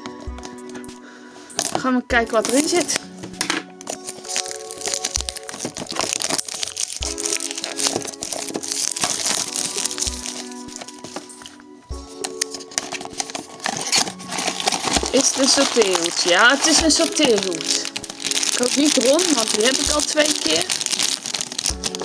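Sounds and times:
background music: 0.0s - 22.0s
cellophane crinkling: 0.0s - 22.0s.

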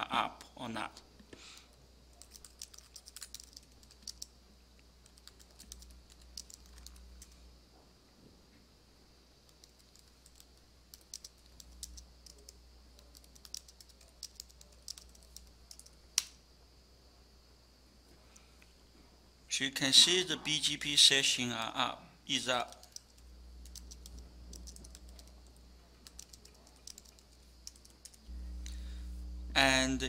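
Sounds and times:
computer keyboard typing: 2.1s - 4.3s, 5.0s - 7.4s, 9.5s - 16.0s, 22.6s - 28.3s.

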